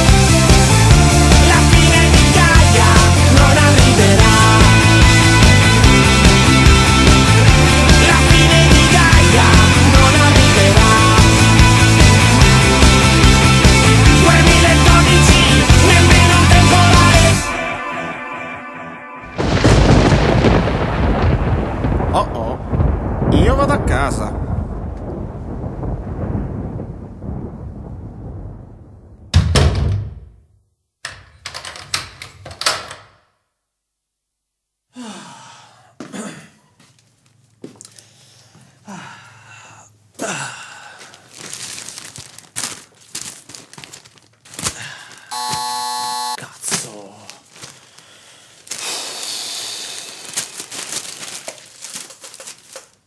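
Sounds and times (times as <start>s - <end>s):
steady buzzer tone: 45.3s - 46.4s
clicks and rustling: 50.4s - 53.0s.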